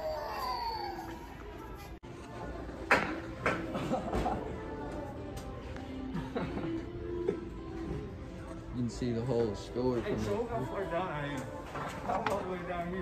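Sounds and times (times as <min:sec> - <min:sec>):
background music: 0:00.0 - 0:13.0.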